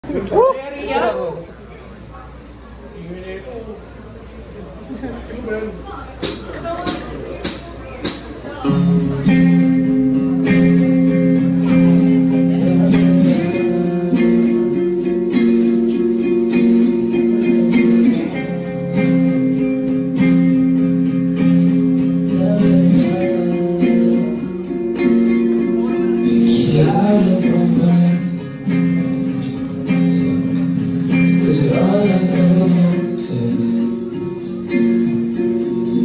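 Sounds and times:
live band with electric guitar chords: 0:06.2 - 0:36.0.

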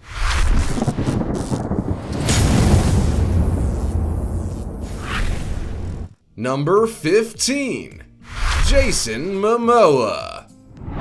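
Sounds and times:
thunder rumble: 0:00.8 - 0:06.2
rain-like hiss: 0:02.2 - 0:06.1.

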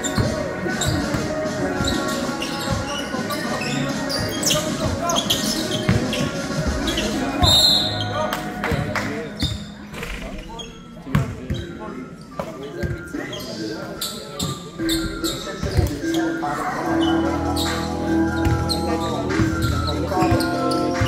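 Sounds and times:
players' voices echoing: 0:00.0 - 0:21.0.

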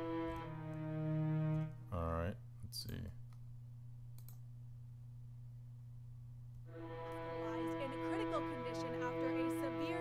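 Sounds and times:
low electrical hum: 0:00.0 - 0:10.0
faint clicks: 0:04.1 - 0:04.4.

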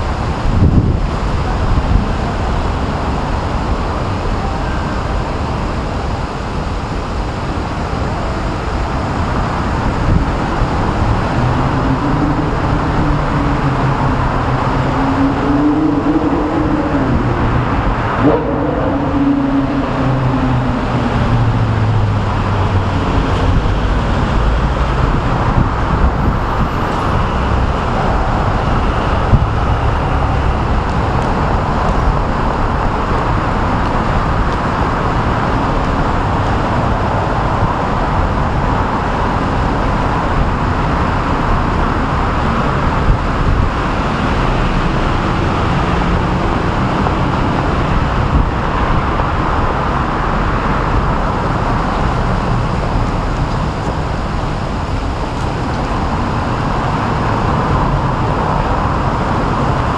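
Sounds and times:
road traffic noise: 0:00.0 - 0:59.9.

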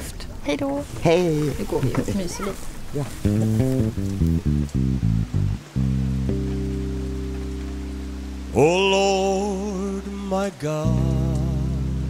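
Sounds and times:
electric bass guitar notes: 0:03.2 - 0:12.0.

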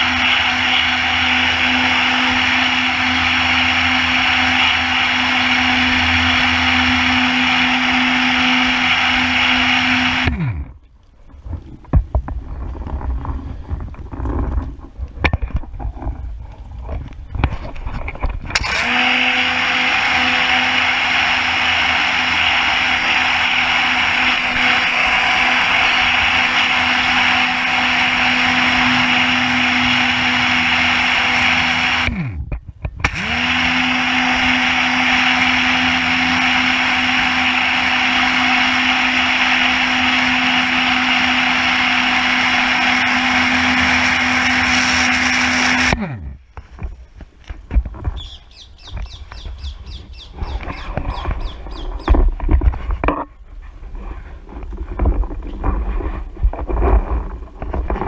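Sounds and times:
pressure washer motor hum: 0:00.0 - 0:10.8, 0:18.5 - 0:46.6.

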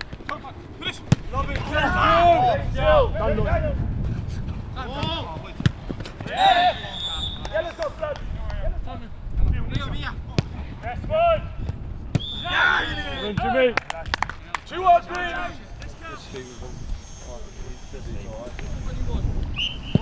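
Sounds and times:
players shouting: 0:00.8 - 0:03.7, 0:06.2 - 0:08.1, 0:12.2 - 0:13.8.

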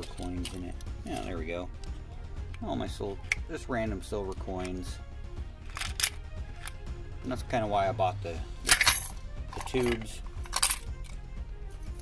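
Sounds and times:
coins clinking in wooden chest: 0:00.0 - 0:01.4, 0:05.7 - 0:06.2, 0:08.7 - 0:11.2
background music: 0:00.0 - 0:12.0.

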